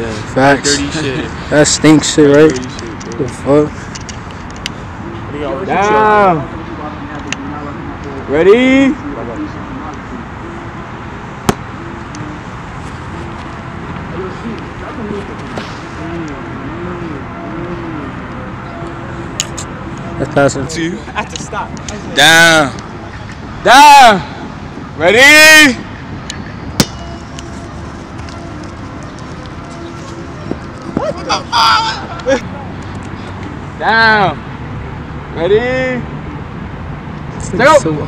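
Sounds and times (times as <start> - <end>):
distant traffic hum: 0.0 - 38.0
outdoor background noise: 0.0 - 38.0
sharp slap: 11.4 - 11.7, 26.8 - 27.0.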